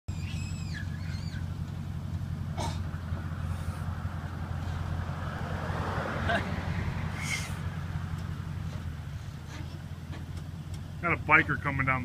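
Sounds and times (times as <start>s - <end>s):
short high descending calls: 0.1s - 1.5s
truck engine idling: 0.1s - 12.0s.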